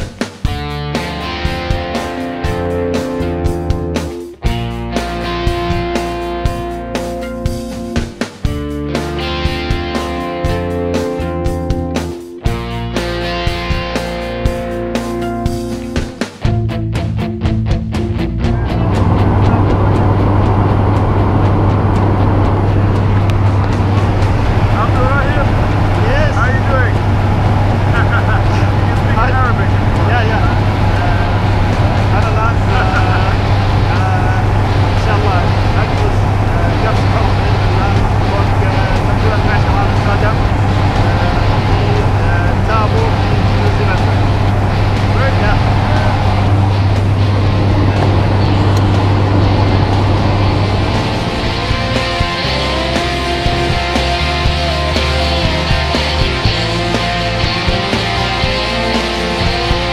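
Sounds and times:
light aircraft engine and propeller: 18.4 - 59.9
voices: 18.5 - 59.9.

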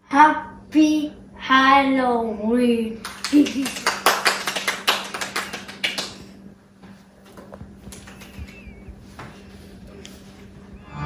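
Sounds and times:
hand clapping: 3.0 - 6.3, 7.3 - 9.3
voice-like sound sliding down: 10.8 - 11.0.

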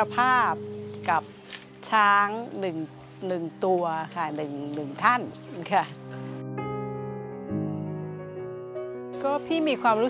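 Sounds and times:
woman speaking: 0.0 - 6.1, 9.2 - 10.0
insects shrilling: 0.0 - 6.6, 9.2 - 10.0.

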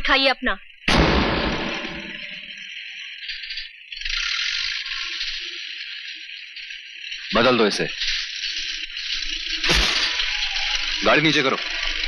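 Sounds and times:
hissing tearing noise: 9.5 - 11.4
loud rip: 9.6 - 10.3.

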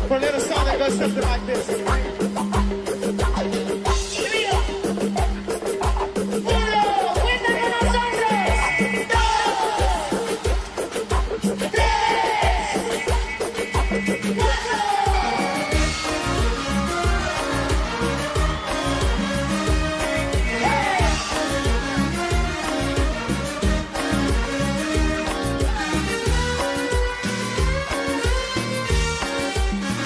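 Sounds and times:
band playing dance music: 0.0 - 30.0
moving bass line: 11.4 - 30.0.

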